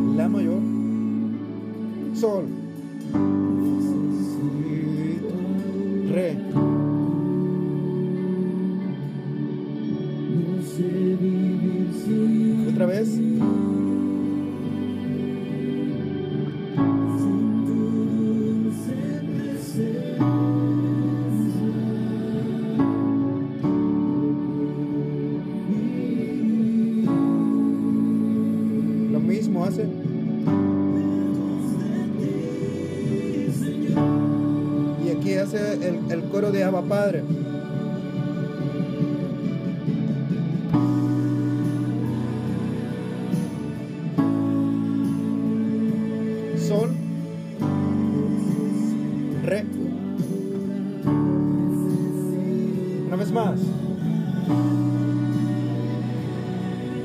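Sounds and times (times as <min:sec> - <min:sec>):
digital piano playing slow chords: 0:00.0 - 0:57.0.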